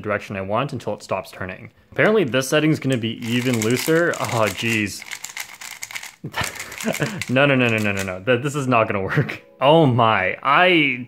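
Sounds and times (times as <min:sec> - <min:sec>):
puzzle cube plastic clicking: 0:02.8 - 0:08.2.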